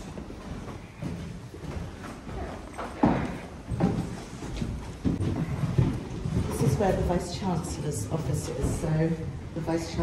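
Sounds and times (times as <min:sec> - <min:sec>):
footsteps on carpeted stairs: 0:00.0 - 0:07.6.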